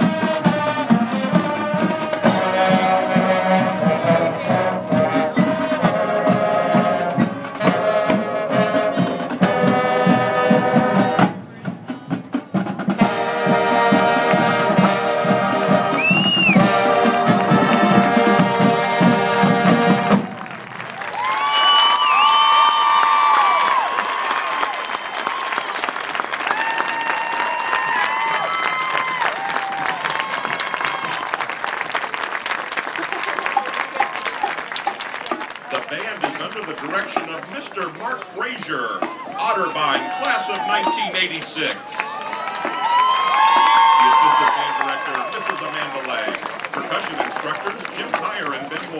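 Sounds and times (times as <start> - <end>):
marching band brass and drums: 0.0 - 48.9
crowd cheering: 13.4 - 48.9
applause: 20.0 - 39.0, 39.8 - 48.9.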